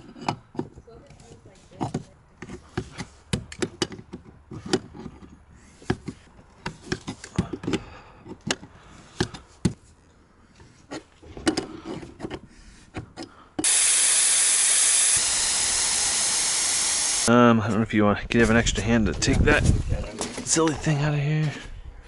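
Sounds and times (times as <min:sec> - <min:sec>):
compressed air hissing: 0:13.6 - 0:17.3.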